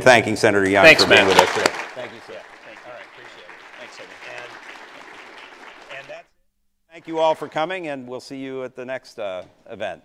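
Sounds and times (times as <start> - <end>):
audience applauding: 0.7 - 6.2.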